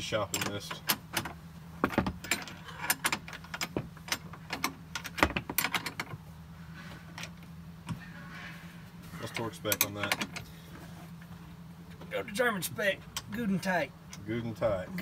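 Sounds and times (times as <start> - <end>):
wrenches clinking on metal: 0.0 - 6.2, 9.2 - 10.5.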